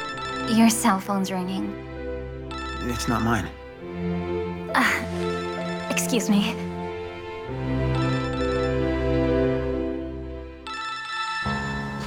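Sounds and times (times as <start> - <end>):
phone ringtone melody: 0.0 - 1.1, 2.5 - 3.5, 7.9 - 9.4, 10.6 - 12.0.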